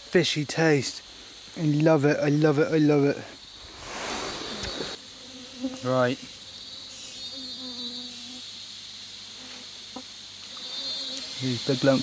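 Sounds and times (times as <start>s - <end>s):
insects pulsing chorus: 0.0s - 12.0s.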